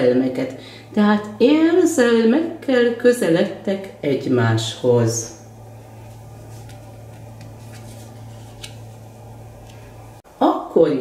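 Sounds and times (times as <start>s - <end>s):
steady low hum: 0.0s - 11.0s
card turned over on table: 6.1s - 9.0s.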